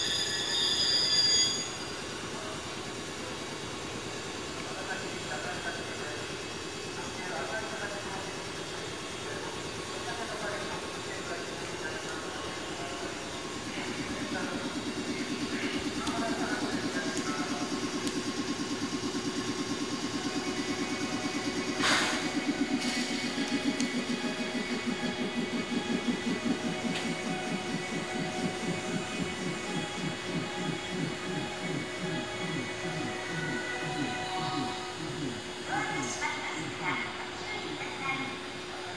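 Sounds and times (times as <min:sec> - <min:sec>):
electric train low pulsing hum: 0:00.0 - 0:38.9
air hissing: 0:13.0 - 0:35.2.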